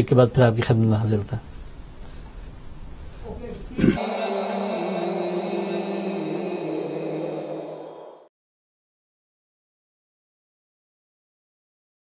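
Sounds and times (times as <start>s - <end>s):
chime-like ident music: 4.0s - 8.3s.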